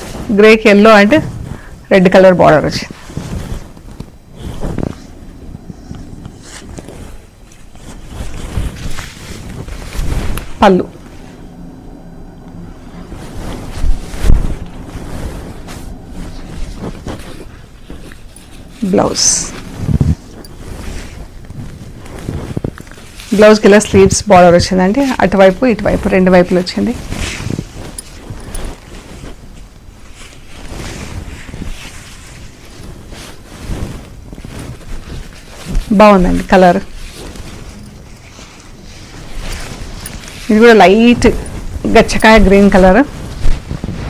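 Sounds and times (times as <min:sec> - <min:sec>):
cloth swinging whooshes: 0:00.0 - 0:44.0.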